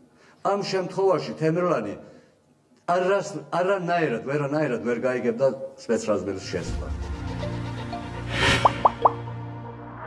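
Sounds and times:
whoosh: 0:08.3 - 0:10.0
rising plopping blips: 0:08.4 - 0:09.2.

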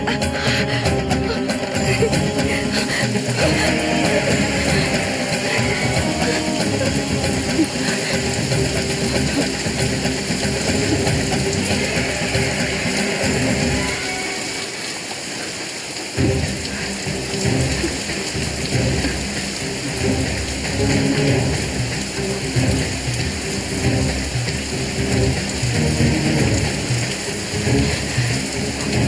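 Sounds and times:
background music score: 0:00.0 - 0:29.0
steady rain: 0:00.0 - 0:29.0.

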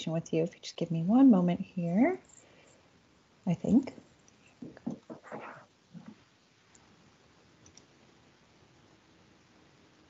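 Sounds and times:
soft rustles: 0:03.9 - 0:06.2
faint clicks: 0:07.6 - 0:07.9.

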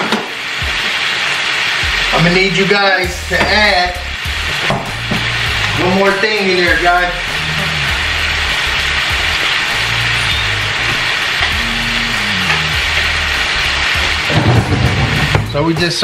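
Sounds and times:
vegetables sizzling in hot oil: 0:00.0 - 0:16.0
bass notes of background music: 0:01.8 - 0:16.0.

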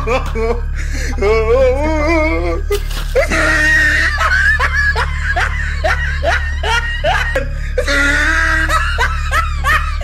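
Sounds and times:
low steady hum: 0:00.0 - 0:10.0
high-pitched laughter: 0:03.0 - 0:10.0.

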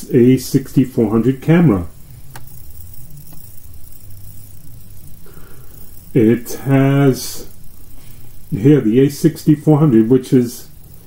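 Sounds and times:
faint hiss: 0:00.0 - 0:11.0
low background hum: 0:00.0 - 0:11.0.

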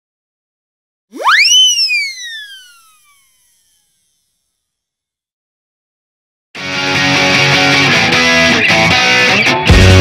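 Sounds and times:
synthesized swoosh tone sweeping: 0:01.1 - 0:04.2.

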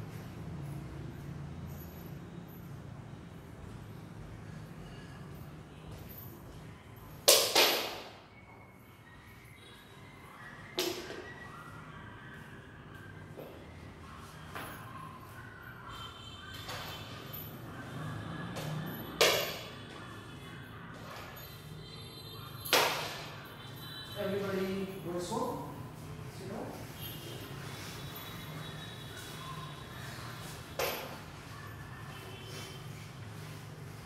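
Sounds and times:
faint background music: 0:00.0 - 0:34.0.

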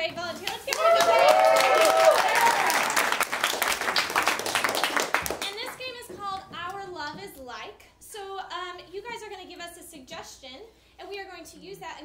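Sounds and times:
audience applauding: 0:00.4 - 0:05.8
cheering voices: 0:00.6 - 0:03.2.

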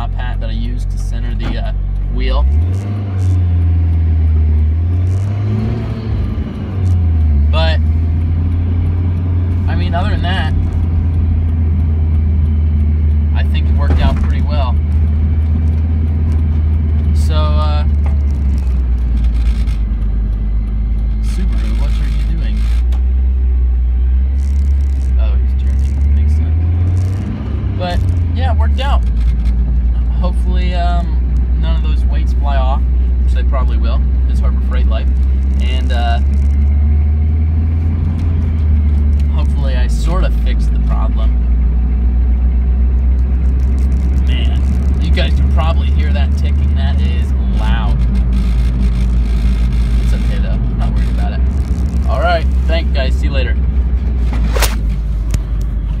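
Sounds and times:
truck engine and road drone: 0:00.0 - 0:56.0.

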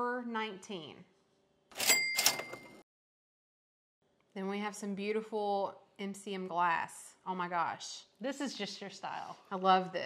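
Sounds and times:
cash register bell ringing: 0:01.8 - 0:02.8.

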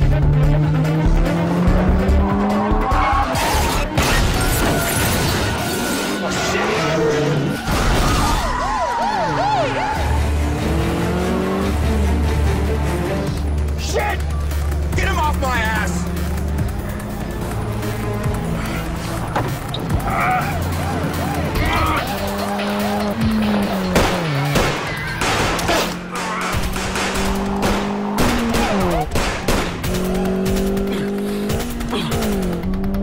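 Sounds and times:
car engines racing: 0:00.0 - 0:33.0
film music score: 0:00.0 - 0:33.0
tyres squealing and skidding: 0:02.3 - 0:11.8, 0:13.8 - 0:32.5
wavering siren-like tones: 0:02.9 - 0:10.4, 0:18.1 - 0:23.9.

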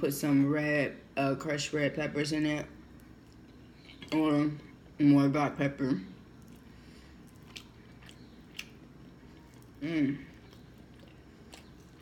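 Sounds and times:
person chewing food: 0:06.2 - 0:12.0.

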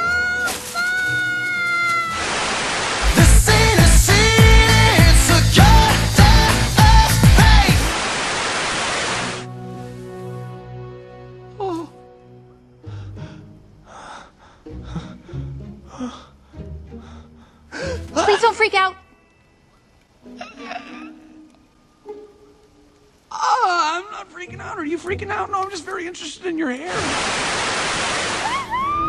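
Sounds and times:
short rushing hiss: 0:02.1 - 0:03.7, 0:07.7 - 0:10.4, 0:26.9 - 0:28.8
background music with bass: 0:03.0 - 0:07.9.

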